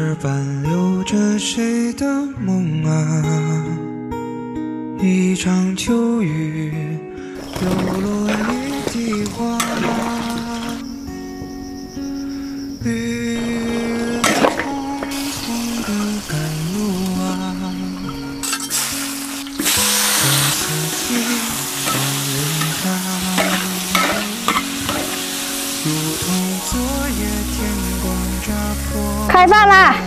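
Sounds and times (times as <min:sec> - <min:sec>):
background music: 0:00.0 - 0:30.0
vegetables sizzling in a wok: 0:07.4 - 0:10.9, 0:13.4 - 0:29.4
spatula scraping a wok: 0:18.4 - 0:25.6.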